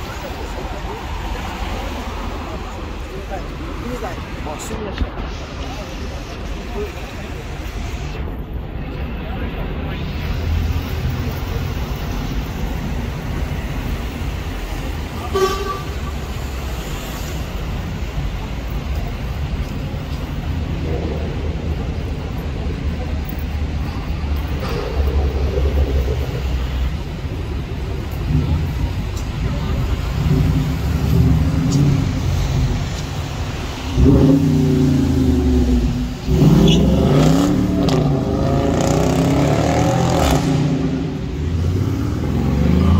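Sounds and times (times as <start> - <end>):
car engine rumbling: 0.0 - 42.9
city traffic: 0.0 - 42.9
car horn toot: 15.2 - 16.2.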